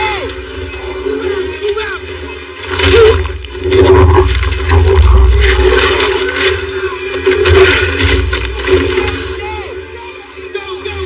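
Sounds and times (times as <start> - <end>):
deep rumble: 2.7 - 9.2.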